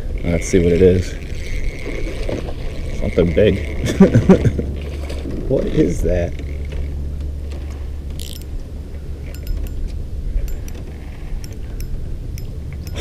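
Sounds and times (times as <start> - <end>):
reel clicking: 0.2 - 3.9, 8.1 - 8.7, 9.3 - 13.0
fishing reel cranking: 0.2 - 4.4, 8.1 - 8.6, 9.3 - 9.9, 10.5 - 13.0
steady low rumble: 6.3 - 13.0.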